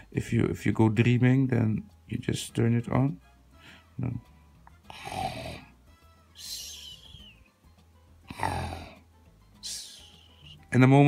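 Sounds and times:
person making snore-like breathing: 4.8s - 5.7s, 8.3s - 9.0s.

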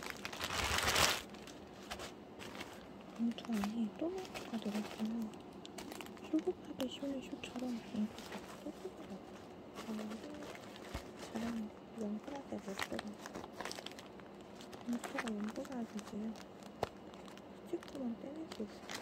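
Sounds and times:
plastic packaging crinkling: 0.0s - 19.0s
soft low voice: 3.1s - 13.3s, 14.8s - 16.4s, 17.6s - 19.0s.

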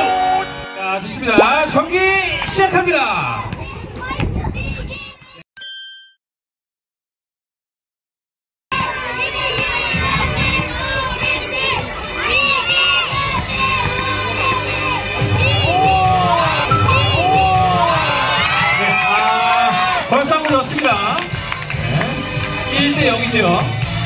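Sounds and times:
children shouting and cheering: 8.8s - 20.0s.

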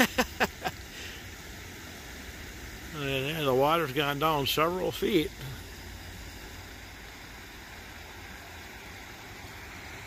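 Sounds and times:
man laughing: 0.0s - 0.8s
steady background hiss: 0.0s - 10.0s.

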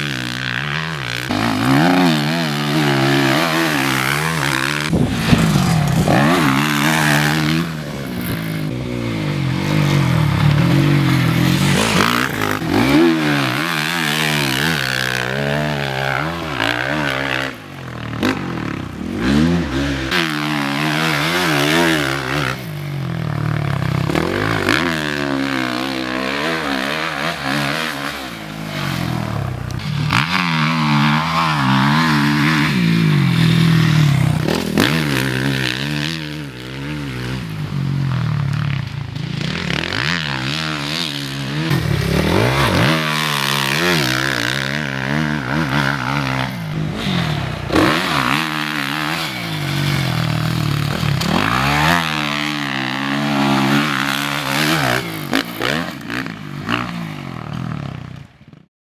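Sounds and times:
motocross bike engine revving: 0.0s - 58.7s.

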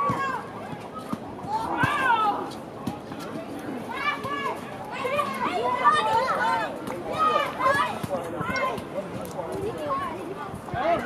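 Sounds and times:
children shouting: 0.0s - 2.5s, 3.9s - 8.8s.

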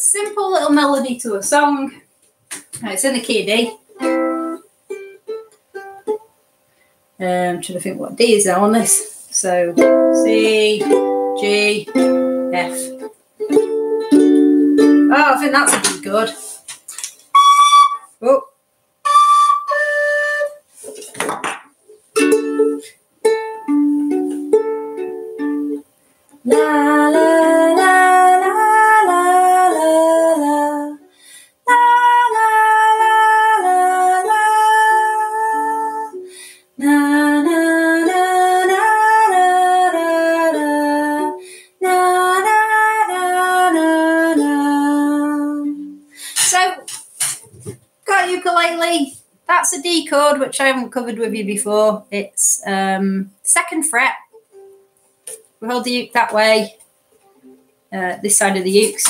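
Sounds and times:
ukulele lullaby melody: 3.9s - 6.3s, 9.7s - 15.3s, 22.1s - 25.8s, 26.4s - 31.0s, 31.8s - 46.0s, 54.4s - 55.4s
higher held melody line: 17.3s - 18.1s, 19.0s - 20.6s
recorder-type whistle notes: 17.3s - 18.1s, 19.0s - 20.6s.

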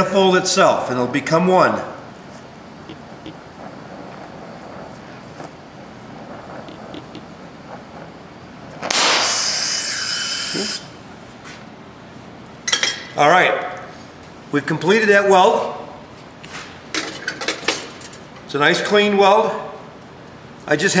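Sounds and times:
welding torch burning: 1.2s - 11.4s
loud hiss with high whistle: 3.0s - 11.0s.

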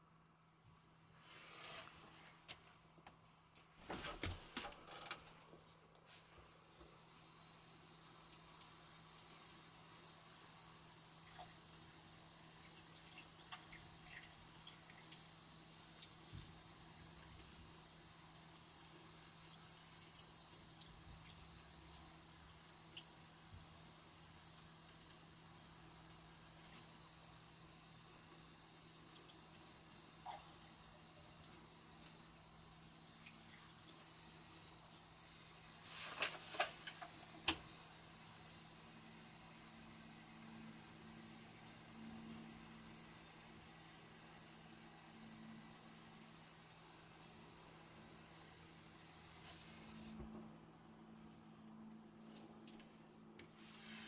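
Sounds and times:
steady hiss: 6.0s - 50.2s, 53.5s - 54.0s.

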